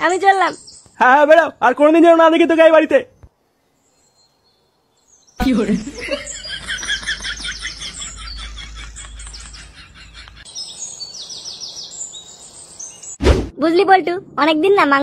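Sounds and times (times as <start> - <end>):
birds chirping: 0.0 - 13.2
low hum: 5.8 - 10.4.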